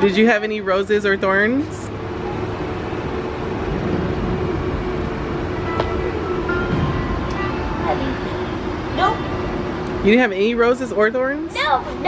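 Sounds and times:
vehicle rumble: 0.0 - 12.0.

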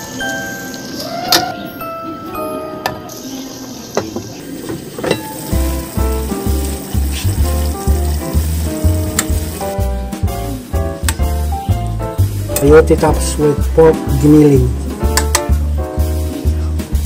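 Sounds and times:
food sizzling in a pan: 0.0 - 1.7, 3.0 - 10.7
background music: 0.0 - 3.5, 5.2 - 17.0.

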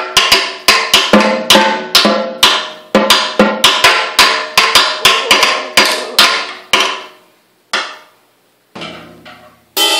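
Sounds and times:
drum kit strikes: 0.0 - 7.2, 8.8 - 9.9.

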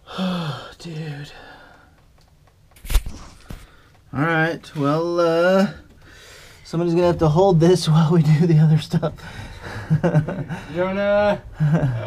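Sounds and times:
people speaking: 6.7 - 9.2.

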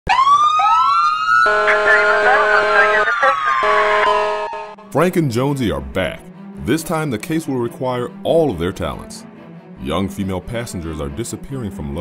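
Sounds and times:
police sirens wailing: 0.1 - 4.9
steady low horn tone: 1.4 - 6.8.

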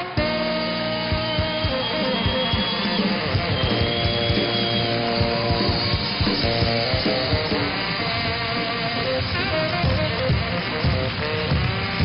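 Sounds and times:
guitar: 0.0 - 12.0
steady drum beat: 0.0 - 12.0
upbeat band music: 0.0 - 12.0.

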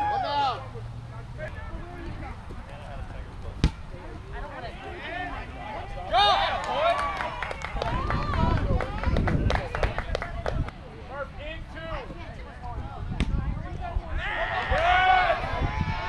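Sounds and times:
players shouting: 0.0 - 0.8, 4.0 - 9.0, 14.0 - 16.0
kickball kicked with a thump: 3.6 - 3.8, 13.1 - 13.5.

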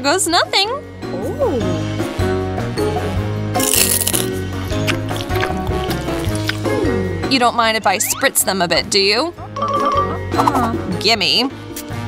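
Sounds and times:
upbeat background music: 0.0 - 12.0
teeth crunching hard candy: 3.6 - 6.8.

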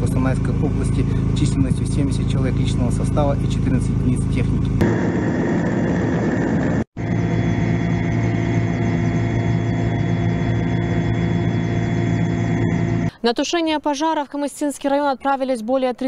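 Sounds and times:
helicopter engine and rotor drone: 0.0 - 13.1.

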